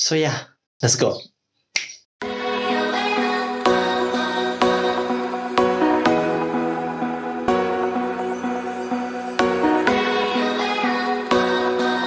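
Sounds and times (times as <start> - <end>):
finger snap: 1.7 - 2.1
background music with sustained chords: 2.2 - 12.0.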